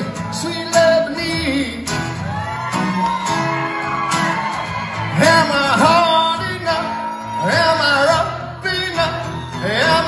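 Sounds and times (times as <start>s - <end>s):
man singing: 0.0s - 2.2s, 5.1s - 10.0s
acoustic guitar: 0.0s - 10.0s.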